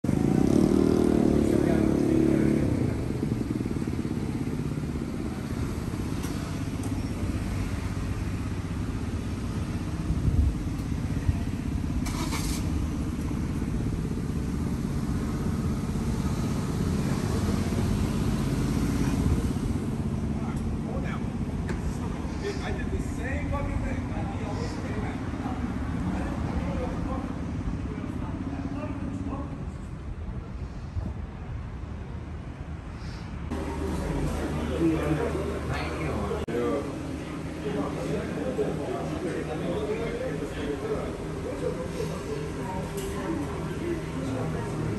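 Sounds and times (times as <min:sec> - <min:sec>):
vehicle engine running close by: 0:00.0 - 0:31.1, 0:33.0 - 0:44.9
low rumble of traffic: 0:00.0 - 0:44.9.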